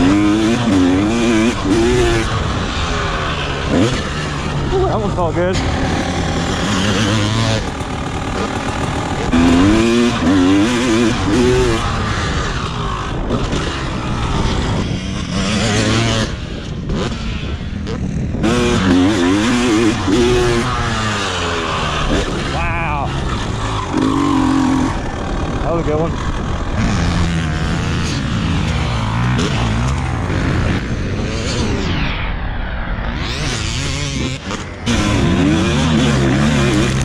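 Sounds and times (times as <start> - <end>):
two-stroke motorcycle engine revving: 0.0 - 32.0, 33.1 - 37.0
wind noise on microphone: 11.0 - 18.9, 22.0 - 36.0.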